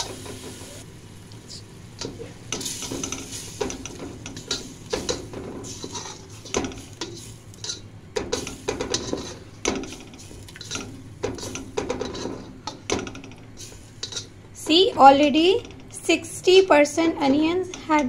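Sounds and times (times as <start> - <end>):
paste sizzling in oil: 2.5 - 7.8
spatula scraping a pan: 2.6 - 12.6, 13.6 - 14.4.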